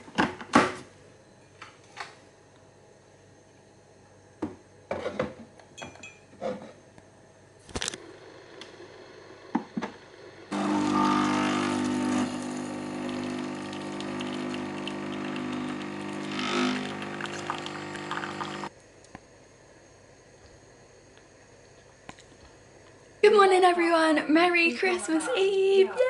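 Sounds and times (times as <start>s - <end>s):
coffee machine pump humming: 8.0s - 18.7s
coffee pouring into mug: 10.5s - 18.7s.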